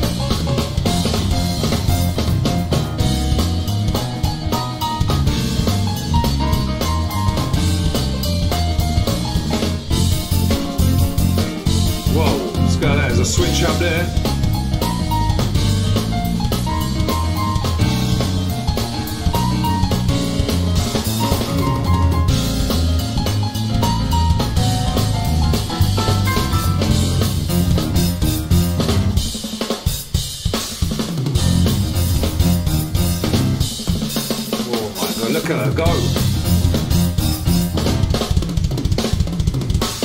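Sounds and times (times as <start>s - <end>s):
walking electric bass line: 0.0s - 29.4s, 31.3s - 34.0s, 34.8s - 39.8s
busy drum kit: 0.0s - 40.0s
jazz band playing: 0.0s - 40.0s
held higher notes: 11.1s - 15.4s.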